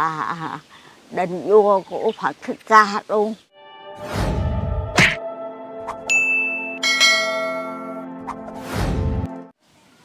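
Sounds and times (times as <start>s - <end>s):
low musical drone: 3.5s - 8.3s
bell-like chimes: 6.1s - 8.0s.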